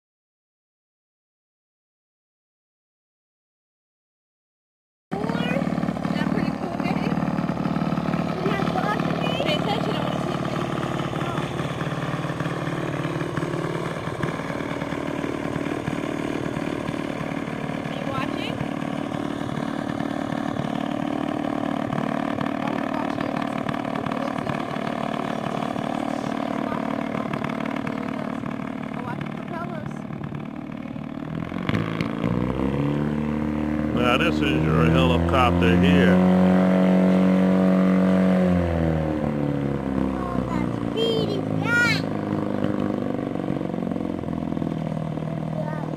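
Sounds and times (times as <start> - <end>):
gyrocopter engine running: 5.1 - 45.9.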